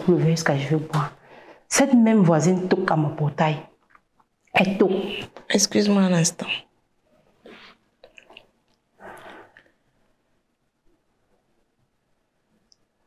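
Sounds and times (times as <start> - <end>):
woman sniffing: 7.5 - 7.8.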